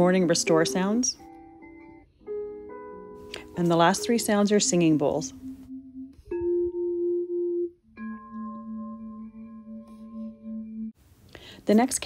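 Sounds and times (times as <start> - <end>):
high singing bowl tone: 3.8 - 11.0
low singing bowl tone: 4.1 - 11.0.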